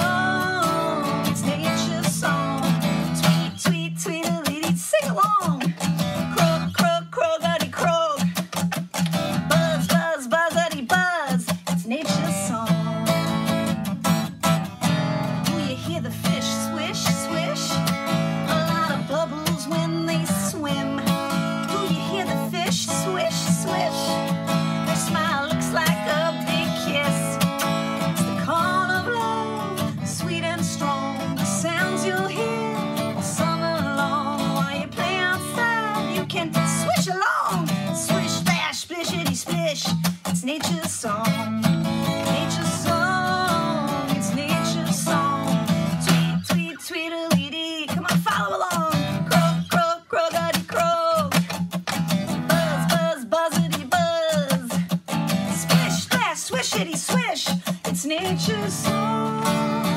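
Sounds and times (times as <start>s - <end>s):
strummed acoustic guitar: 0.0s - 59.9s
woman singing: 0.0s - 59.9s.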